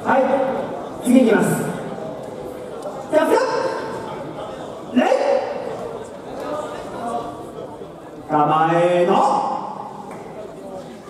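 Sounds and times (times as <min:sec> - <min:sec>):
loud shouts echoing in a hall: 0:00.0 - 0:11.0.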